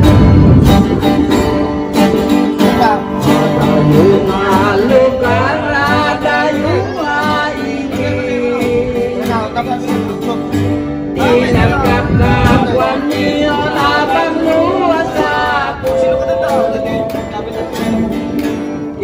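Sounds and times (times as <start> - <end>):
acoustic guitars strumming: 0.0 - 19.0
man singing into a microphone: 2.6 - 18.1.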